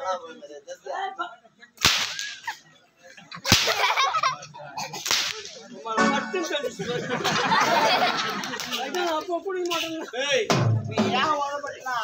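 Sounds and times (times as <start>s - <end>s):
whip cracks: 1.8s - 2.4s, 3.5s - 3.8s, 5.0s - 5.7s.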